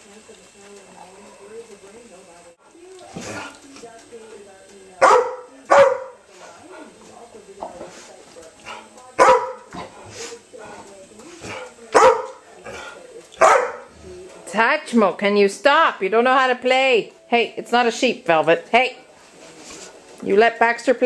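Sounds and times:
dog barking: 5.0 - 6.2, 9.2 - 9.7, 11.9 - 12.4, 13.4 - 13.9.

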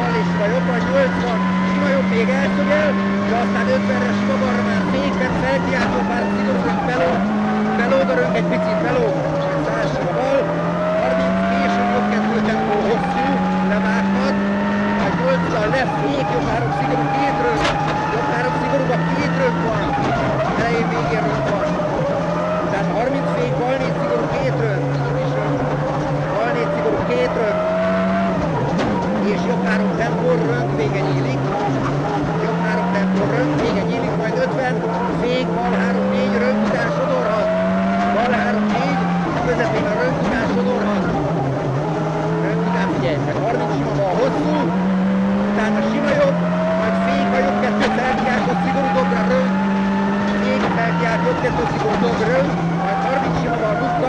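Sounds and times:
rally car engine revving hard: 0.0 - 54.0.

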